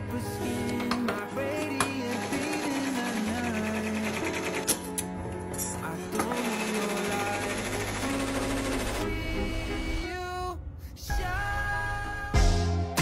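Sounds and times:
pop song with singing: 0:00.0 - 0:05.0, 0:05.6 - 0:13.0.

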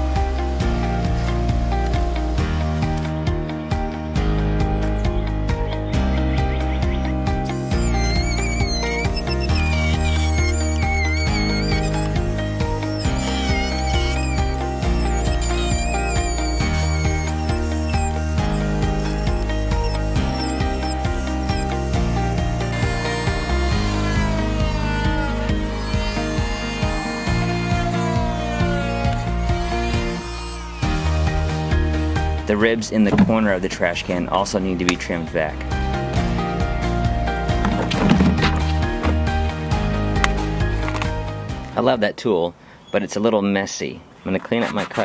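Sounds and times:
background music: 0:00.0 - 0:41.8
oscillating multi-tool cutting plastic: 0:07.5 - 0:31.3.

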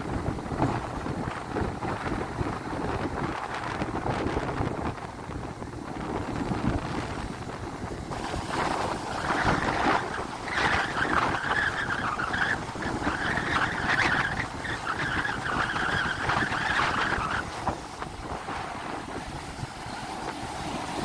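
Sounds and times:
surf washing on shore: 0:00.0 - 0:21.0
wind buffeting microphone: 0:00.0 - 0:21.0.

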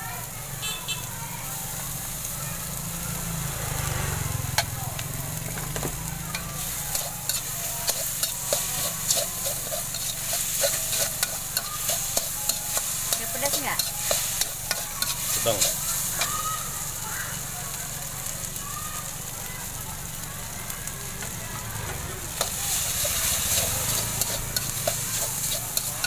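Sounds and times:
food sizzling in hot oil: 0:00.0 - 0:26.0
metal spatula scraping wok: 0:06.3 - 0:17.0, 0:22.3 - 0:26.0.

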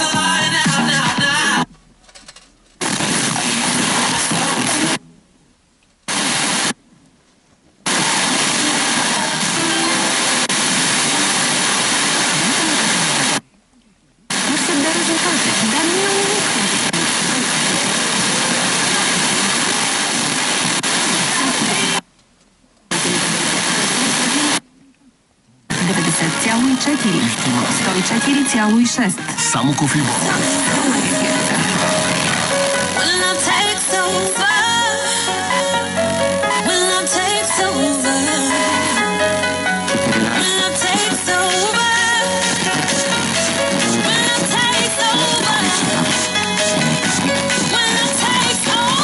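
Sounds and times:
faint radio programme audio: 0:00.0 - 0:06.8, 0:07.8 - 0:49.0
radio static hiss: 0:02.8 - 0:05.2, 0:06.0 - 0:06.8, 0:07.8 - 0:13.4, 0:14.2 - 0:22.1, 0:22.9 - 0:24.7, 0:25.6 - 0:49.0.

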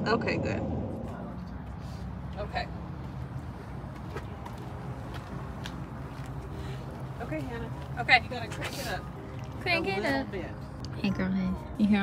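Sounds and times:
footsteps on asphalt: 0:01.6 - 0:09.7.

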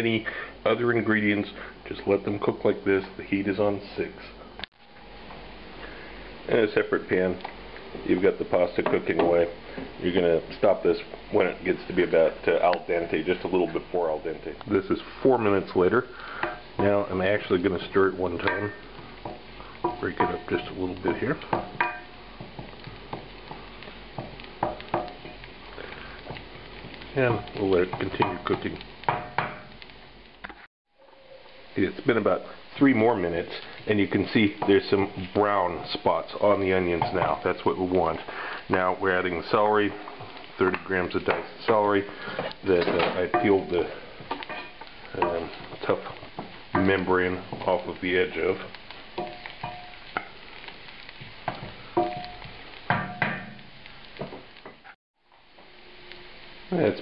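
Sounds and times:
onions sizzling in butter: 0:00.0 - 0:57.0
wooden spoon knocking on skillet: 0:18.4 - 0:25.5, 0:26.2 - 0:29.8, 0:36.9 - 0:37.7, 0:39.9 - 0:48.0, 0:48.6 - 0:50.4, 0:51.1 - 0:54.8
wooden spatula scraping pan: 0:37.0 - 0:50.4.

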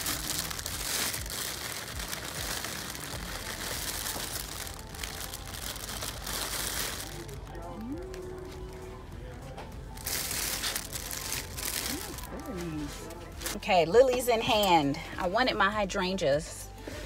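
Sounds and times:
cellophane crinkling and rustling: 0:00.0 - 0:08.8, 0:09.9 - 0:13.6.

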